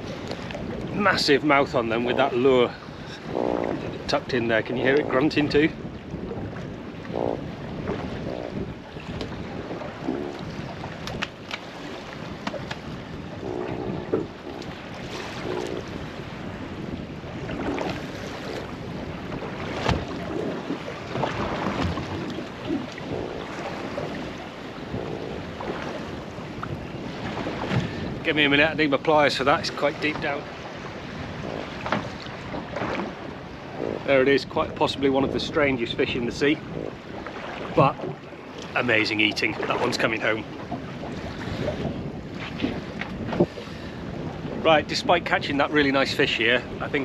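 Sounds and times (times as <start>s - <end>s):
fish grunting: 0.0s - 43.8s
sea noise: 0.0s - 47.0s
wind buffeting microphone: 0.0s - 47.0s.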